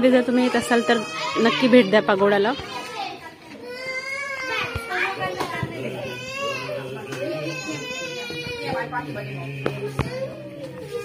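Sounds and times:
visitors talking and calling out: 0.0 - 11.0.

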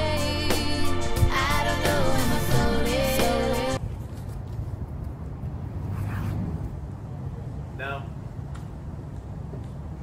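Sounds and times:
distant traffic rumble: 3.8 - 10.0.

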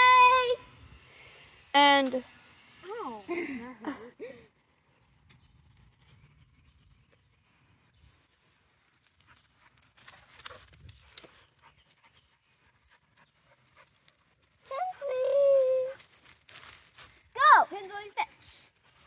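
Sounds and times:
light clicks and rustles: 9.0 - 12.2
dog panting: 9.2 - 15.1.

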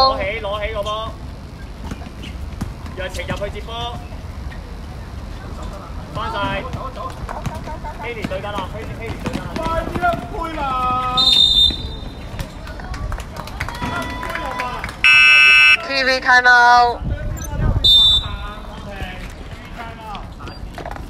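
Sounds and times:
pea whistle blasts: 11.2 - 12.0, 15.0 - 15.9, 17.8 - 18.4
loud electronic buzzer: 15.0 - 16.0.

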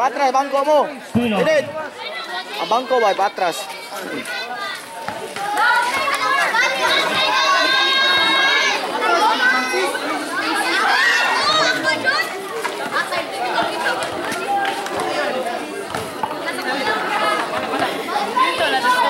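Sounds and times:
crowd chattering and calling out: 0.0 - 19.0.

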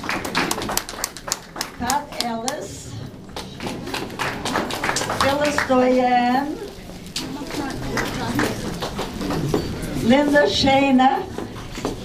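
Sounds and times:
faint voices: 4.8 - 12.0.

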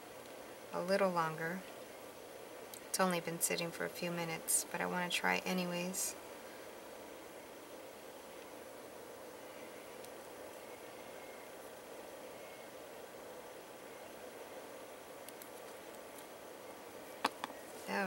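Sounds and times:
room tone hiss: 0.0 - 18.0.

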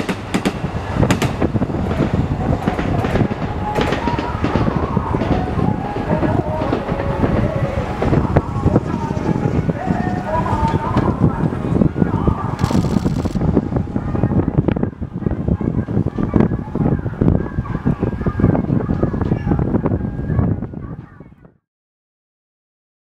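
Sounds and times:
people's voices: 0.0 - 21.6.

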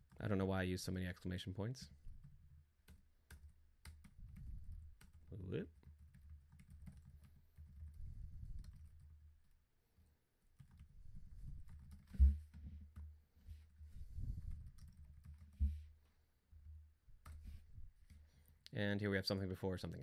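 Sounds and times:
computer keyboard typing: 2.2 - 8.0, 8.6 - 9.6, 10.5 - 11.0, 14.4 - 15.6.

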